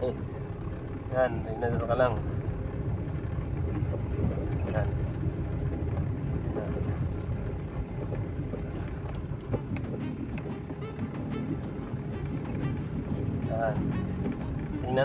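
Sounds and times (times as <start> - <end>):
car engine rumble: 0.0 - 15.0
road noise: 0.0 - 15.0
music playing: 9.6 - 15.0.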